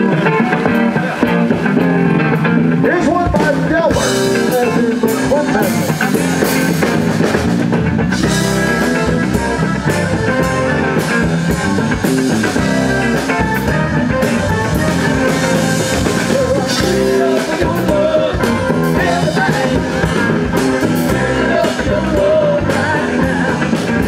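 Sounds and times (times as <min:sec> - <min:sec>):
drum kit beat: 0:00.0 - 0:24.0
electric bass: 0:00.0 - 0:24.0.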